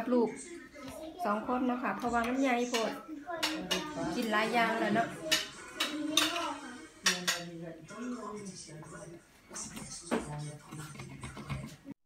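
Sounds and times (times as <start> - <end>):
cutlery scraping a glass plate: 5.2 - 7.5, 10.6 - 11.8.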